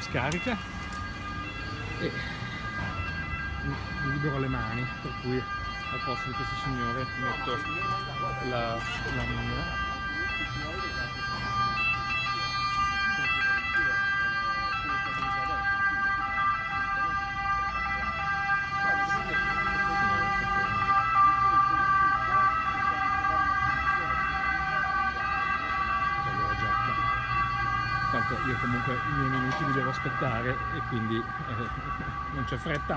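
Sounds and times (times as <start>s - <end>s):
high-pitched alarm tone: 0.0s - 32.9s
low street noise: 0.0s - 32.9s.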